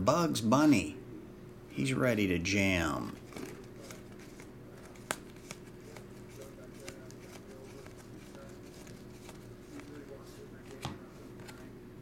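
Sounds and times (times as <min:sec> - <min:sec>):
trading cards sliding: 0:03.1 - 0:11.7
card snap: 0:03.3 - 0:08.1, 0:10.6 - 0:11.6.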